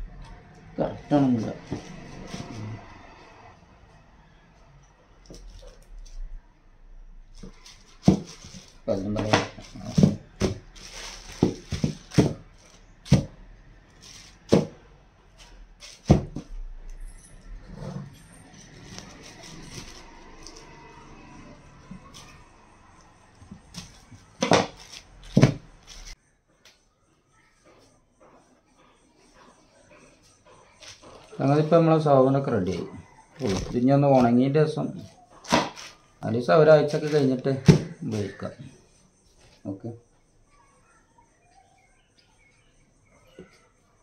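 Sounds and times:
plastic crinkling: 0:07.4 - 0:13.3, 0:13.9 - 0:14.7, 0:18.5 - 0:20.9, 0:23.6 - 0:26.2
soap bars knocking on table: 0:11.4 - 0:12.5.

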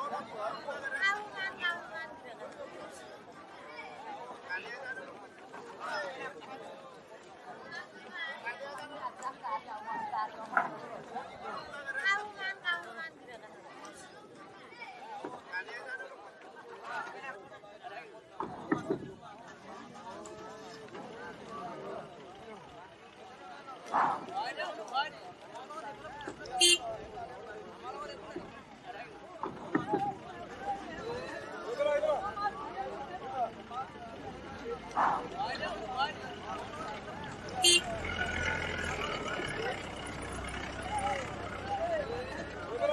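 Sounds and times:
faint voices: 0:00.0 - 0:42.9
people talking and chattering: 0:00.0 - 0:42.9
car engine running low: 0:33.4 - 0:42.9.

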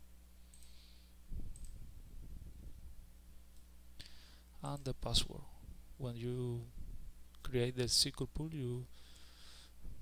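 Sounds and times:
computer mouse clicking: 0:01.5 - 0:01.8.

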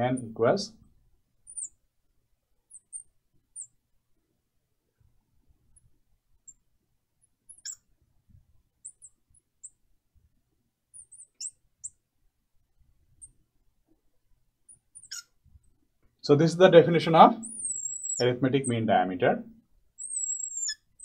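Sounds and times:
marker squeaking on glass: 0:01.4 - 0:01.8, 0:02.7 - 0:03.8, 0:07.2 - 0:07.9, 0:08.8 - 0:09.8, 0:10.9 - 0:12.0, 0:14.7 - 0:15.7, 0:17.3 - 0:18.4, 0:19.9 - 0:21.0.

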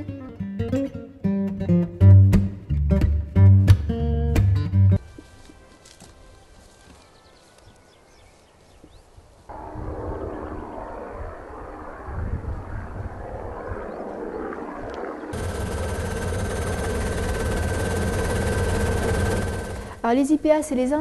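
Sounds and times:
helicopter cabin whine: 0:09.5 - 0:20.8
helicopter rotor beating: 0:09.5 - 0:20.9.

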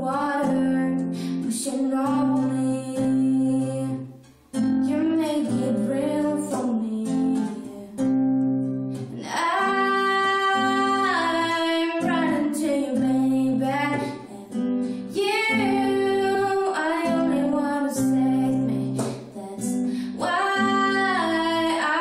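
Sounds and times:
woman singing a ballad: 0:00.0 - 0:08.3, 0:09.0 - 0:22.0
acoustic guitar chords: 0:00.0 - 0:22.0
singer breathing: 0:01.1 - 0:01.4, 0:14.7 - 0:15.1, 0:19.7 - 0:20.2.

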